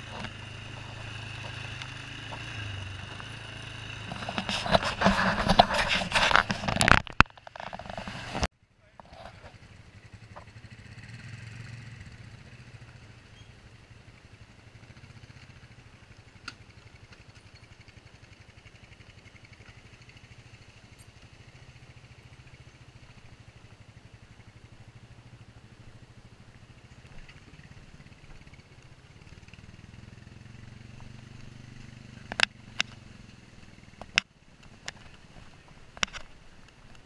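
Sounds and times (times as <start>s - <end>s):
atv engine running: 0.0s - 8.5s, 9.3s - 37.0s.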